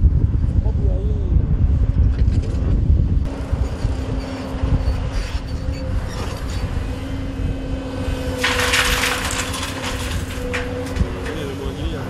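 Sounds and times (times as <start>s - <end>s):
diesel engine rumble: 0.0s - 12.0s
hydraulic whine: 3.3s - 12.0s
creaks and clanks: 4.2s - 6.8s, 8.3s - 12.0s.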